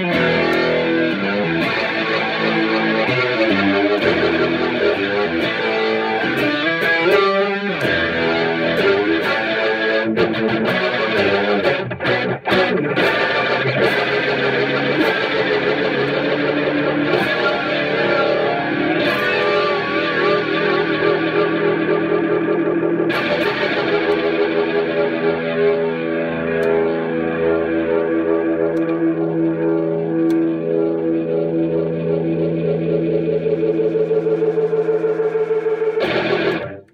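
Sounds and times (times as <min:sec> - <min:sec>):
electric guitar through rotating speaker: 0:00.0 - 0:36.9.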